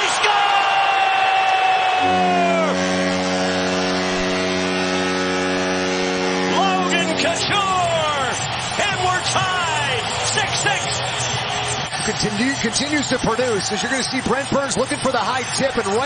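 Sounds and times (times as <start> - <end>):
people shouting and whooping: 0.0 - 3.8
goal horn blast: 1.8 - 10.6.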